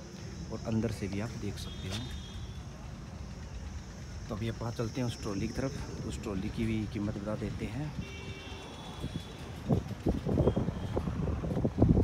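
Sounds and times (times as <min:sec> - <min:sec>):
high-pitched insect drone: 0:00.2 - 0:07.5.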